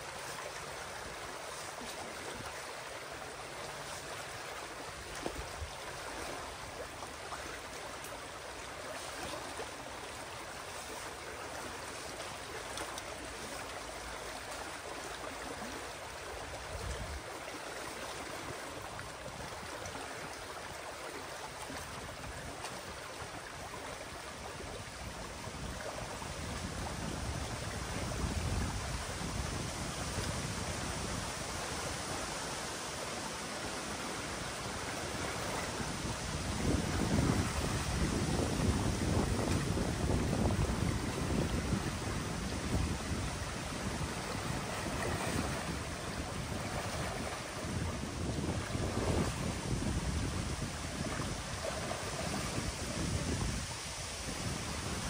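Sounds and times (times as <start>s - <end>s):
muddy water rushing and churning: 0.0s - 55.0s
wind gusts on microphone: 16.4s - 17.3s, 21.8s - 55.0s.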